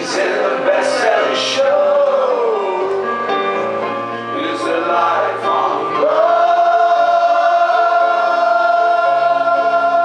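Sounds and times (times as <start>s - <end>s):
male singer holding long note: 4.4s - 10.0s.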